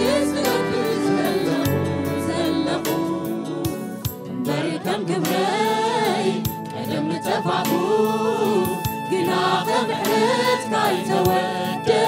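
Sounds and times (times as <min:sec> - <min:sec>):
choir singing gospel song: 0:00.0 - 0:12.0
instrumental accompaniment: 0:00.0 - 0:12.0.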